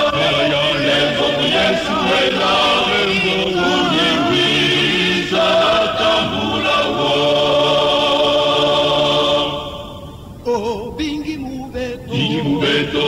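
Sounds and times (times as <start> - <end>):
male choir singing: 0.0 - 13.0.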